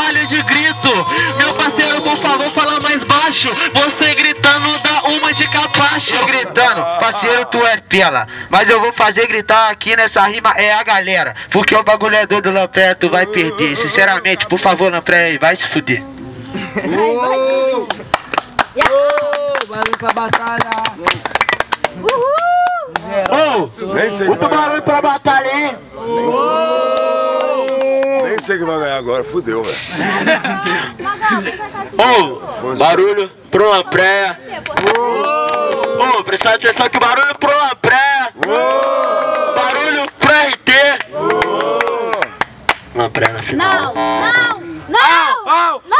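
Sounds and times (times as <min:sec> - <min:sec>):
men shouting and whooping: 0:01.0 - 0:02.8, 0:05.8 - 0:07.9, 0:13.0 - 0:14.7, 0:16.5 - 0:18.0, 0:18.8 - 0:19.8, 0:22.0 - 0:23.6, 0:25.9 - 0:28.3, 0:34.8 - 0:36.3, 0:38.4 - 0:40.1, 0:41.0 - 0:42.3
crowd clapping: 0:17.8 - 0:23.4, 0:26.9 - 0:28.6, 0:34.6 - 0:37.7, 0:38.4 - 0:43.4
person cheering: 0:18.8 - 0:19.7, 0:22.0 - 0:23.0, 0:26.0 - 0:28.3, 0:34.9 - 0:36.1.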